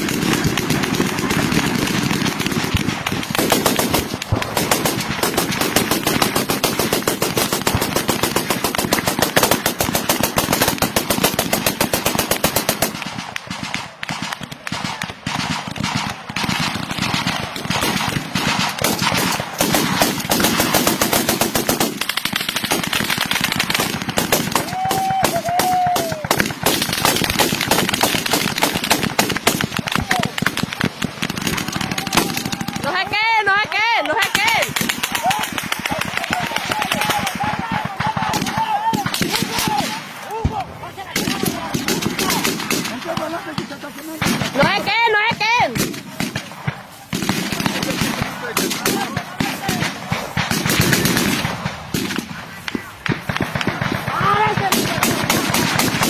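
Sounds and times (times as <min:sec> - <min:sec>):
rapid automatic gunfire: 0:00.0 - 0:56.0.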